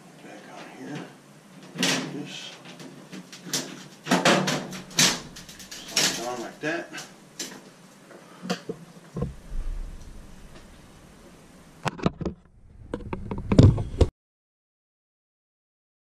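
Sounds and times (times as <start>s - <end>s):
sheet metal panel knocks and clunks: 4.1s - 6.4s, 9.2s - 12.3s.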